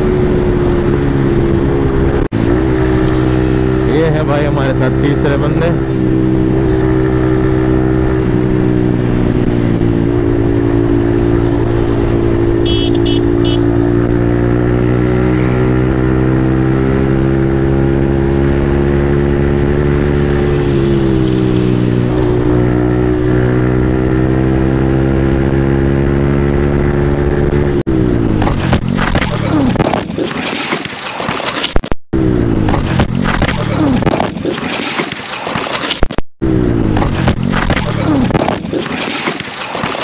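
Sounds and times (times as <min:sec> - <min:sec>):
motorcycle engine running: 0:00.0 - 0:29.8.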